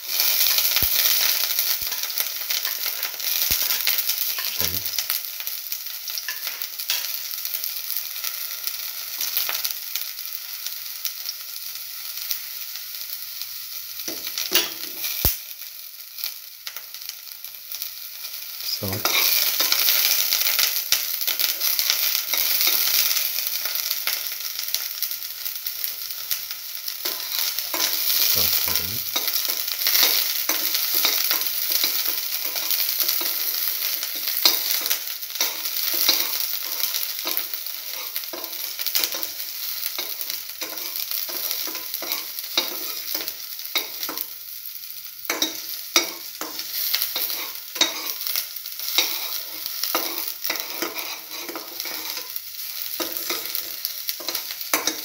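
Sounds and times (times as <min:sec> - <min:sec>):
shallots sizzling in hot oil: 0:00.0 - 0:55.0.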